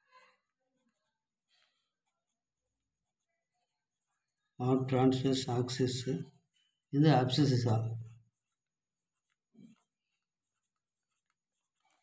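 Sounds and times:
pencil scratching on paper: 0.8 - 12.0.

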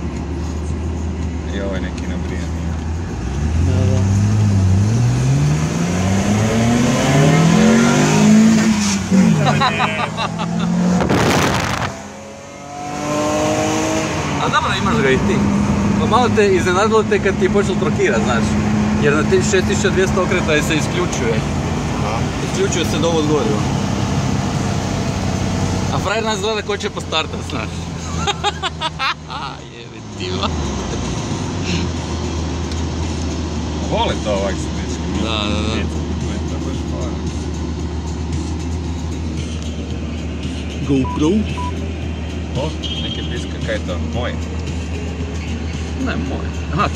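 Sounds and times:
car engine revving: 0.0 - 46.9
road noise: 0.0 - 46.9
loud rush of noise: 7.3 - 14.4.

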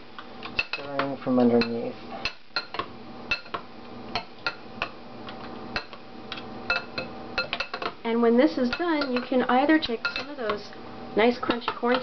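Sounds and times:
metal spoon clinking on bowl: 6.7 - 7.9, 8.7 - 9.4, 10.0 - 10.4.

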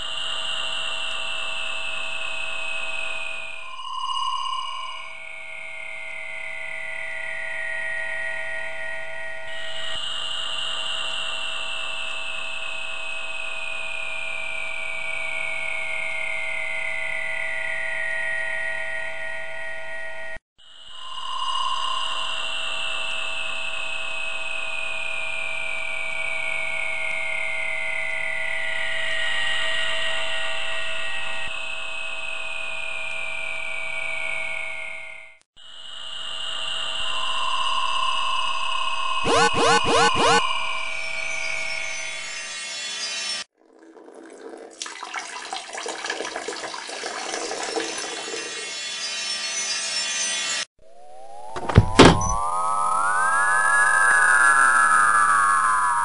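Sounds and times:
electronic flying saucer hum: 0.0 - 32.8, 35.8 - 43.4, 50.8 - 56.0
short beep: 39.3 - 40.5.

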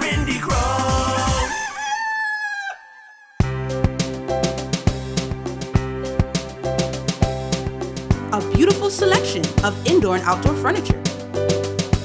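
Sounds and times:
rooster crowing: 1.5 - 3.4
jingle music: 8.2 - 12.0.

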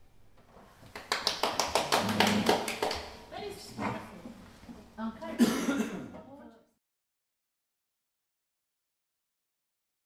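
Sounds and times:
person coughing: 5.4 - 6.2.

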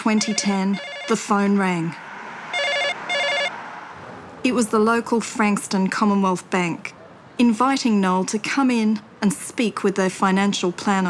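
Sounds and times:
telephone ringing: 0.0 - 1.6, 2.5 - 3.6.

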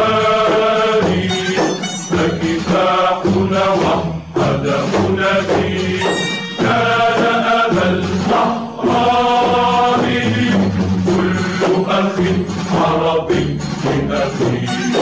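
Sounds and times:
group chanting a song in unison: 0.0 - 15.0
instrumental accompaniment: 0.0 - 15.0.

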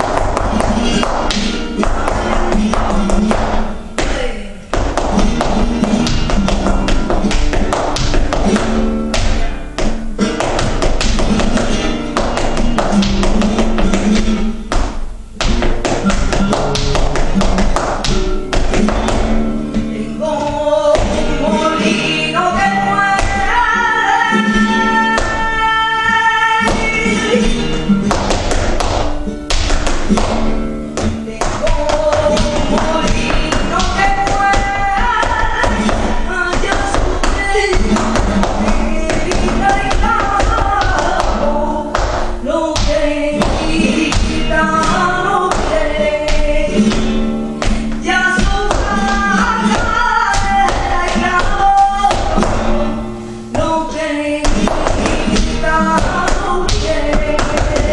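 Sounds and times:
shoes tapping wooden floor: 0.0 - 21.2, 26.6 - 53.0
flamenco guitar music: 0.0 - 57.9.

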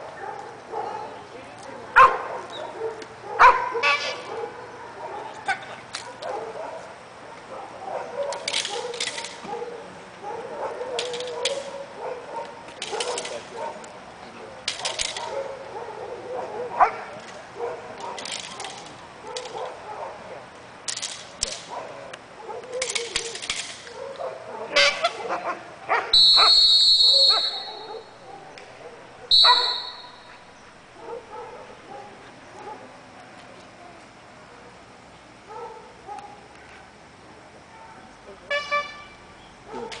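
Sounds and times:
sharp cracks: 12.4 - 13.8, 14.6 - 15.4.

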